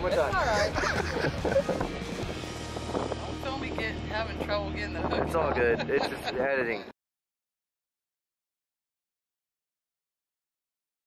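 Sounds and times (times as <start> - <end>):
woman laughing: 0.4 - 1.9, 5.2 - 6.6.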